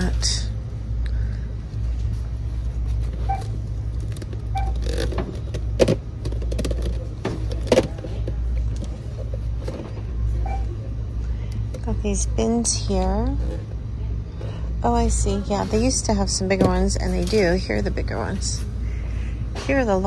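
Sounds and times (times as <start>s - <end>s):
steady low rumble: 0.0s - 20.0s
plastic bins clacking together: 4.1s - 10.0s.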